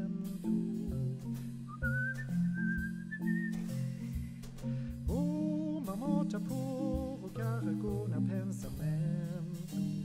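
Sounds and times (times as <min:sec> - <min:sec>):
bossa nova accompaniment: 0:00.0 - 0:10.0
whistled melody: 0:00.0 - 0:10.0.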